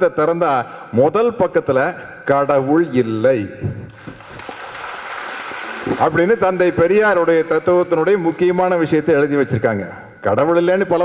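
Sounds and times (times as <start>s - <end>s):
audience applauding: 3.9s - 6.5s
person speaking: 5.6s - 11.0s.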